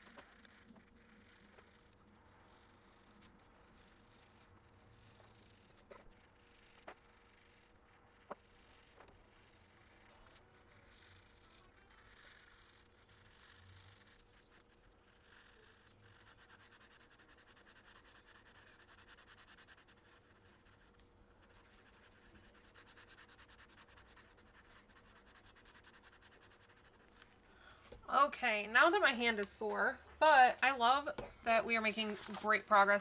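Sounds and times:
marker scratching on paper: 0.0 - 27.4, 28.2 - 33.0.

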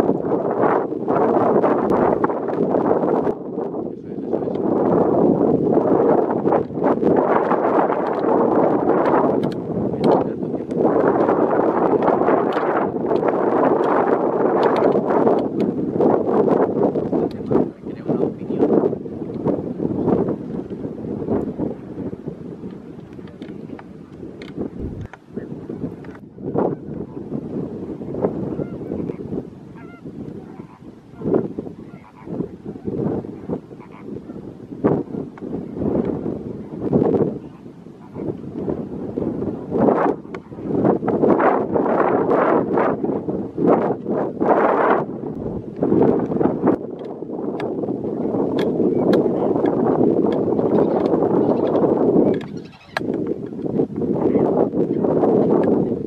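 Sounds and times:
flamingos calling: 28.0 - 36.8, 37.4 - 38.6, 50.3 - 53.6.

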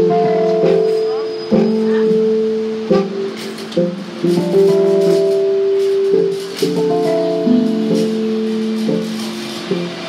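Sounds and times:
keyboard playing held chords: 0.0 - 10.0.

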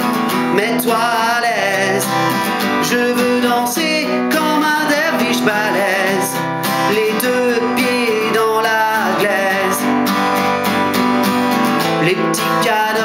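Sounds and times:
person singing: 0.0 - 10.4, 11.8 - 13.0
acoustic guitar strumming: 0.0 - 13.0.

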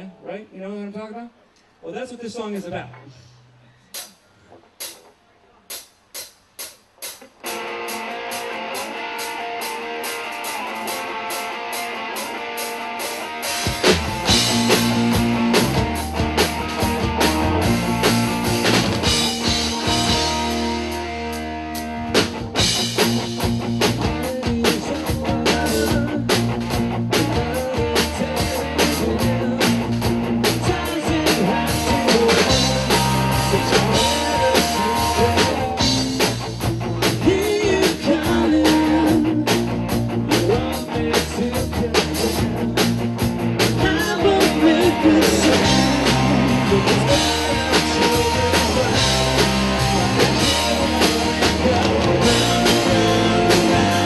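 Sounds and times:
rock band playing: 4.8 - 5.1, 5.7 - 54.0
electric guitar: 7.0 - 54.0.

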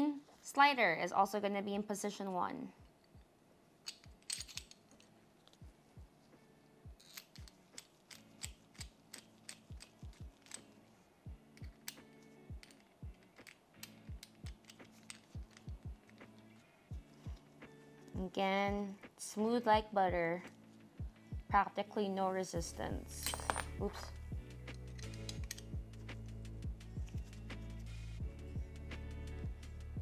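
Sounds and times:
faint background music with beat: 4.1 - 30.0
small metal clicks and ticks: 7.0 - 10.7, 11.5 - 16.6, 24.7 - 25.8.

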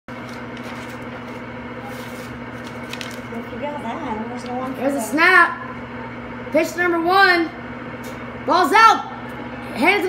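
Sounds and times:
steady hum with fixed tones: 0.1 - 10.0.

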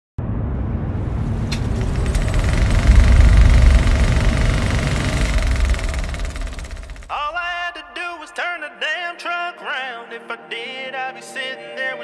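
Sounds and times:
vehicle engine rumbling: 0.2 - 7.4
country song: 7.1 - 12.0
man singing: 7.1 - 12.0.

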